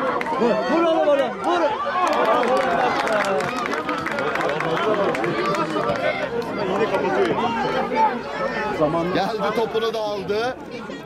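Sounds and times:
children shouting and calling: 0:05.2 - 0:11.0.

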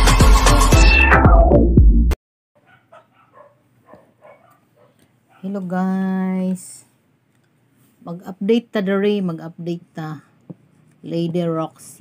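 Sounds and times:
electronic intro music sting: 0:00.6 - 0:02.2
faint dog barking: 0:02.6 - 0:05.7.

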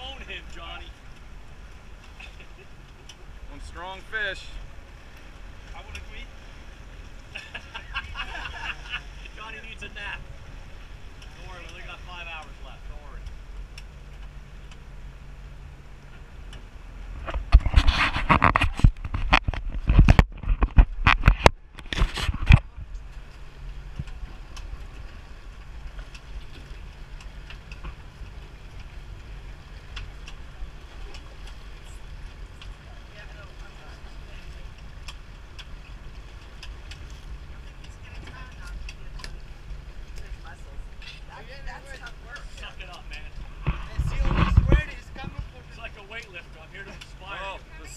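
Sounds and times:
boat engine droning: 0:00.0 - 0:47.9.

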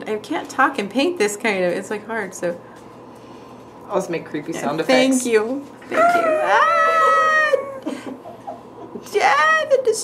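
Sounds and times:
woman wailing: 0:05.9 - 0:07.9.

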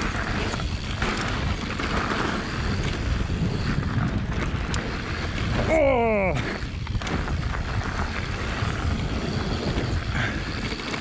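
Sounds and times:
bike clicks and rattles: 0:00.0 - 0:11.0
bike tyres rolling on gravel: 0:00.0 - 0:11.0
wind on microphone: 0:00.0 - 0:11.0.

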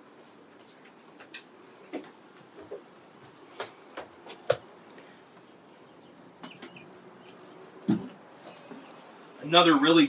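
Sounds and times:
footsteps on wooden steps: 0:01.9 - 0:05.5.

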